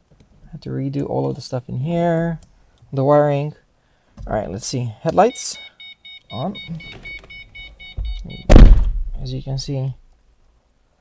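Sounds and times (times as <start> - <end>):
car warning chime beeping: 5.1 - 8.6
heavy thunk: 8.0 - 9.2.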